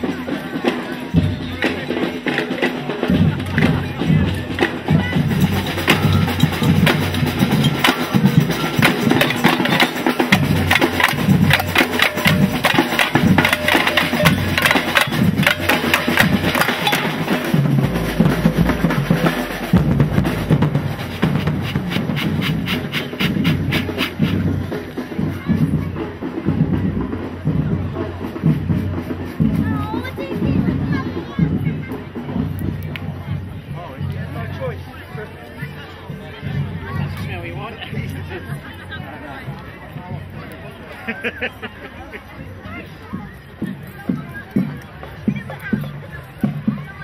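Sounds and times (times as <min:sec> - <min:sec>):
marching drum band: 0:00.0 - 0:47.0.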